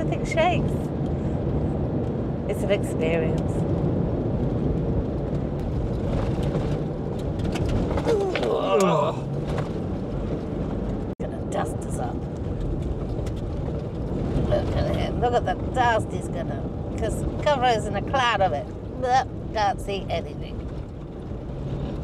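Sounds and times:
tyres and engine rumbling on gravel: 0.0 - 22.0.

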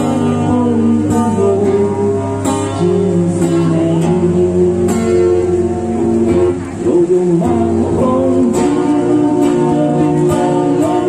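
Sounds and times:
acoustic guitar strumming: 0.0 - 11.0
man singing into microphone: 0.0 - 11.0.

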